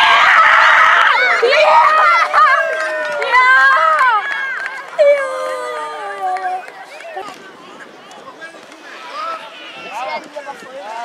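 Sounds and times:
children shouting and cheering: 0.0s - 7.4s.

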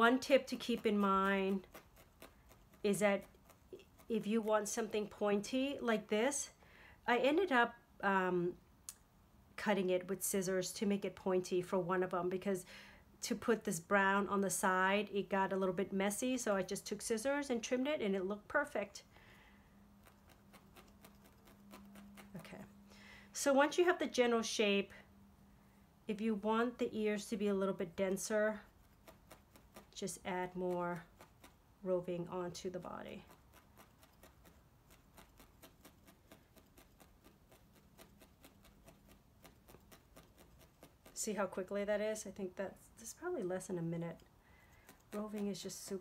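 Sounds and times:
faint steady hum: 0.0s - 46.0s
felting needle ticking into foam: 0.5s - 4.6s, 20.0s - 22.5s, 28.6s - 31.6s, 33.1s - 41.2s, 44.2s - 46.0s.

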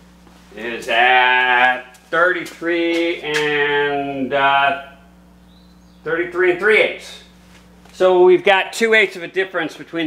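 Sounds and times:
faint steady hum: 0.0s - 10.0s
man singing or humming: 0.6s - 5.0s.

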